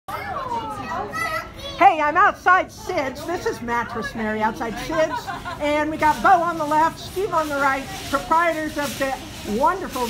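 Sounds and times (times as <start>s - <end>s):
children chattering and calling: 0.1s - 10.0s.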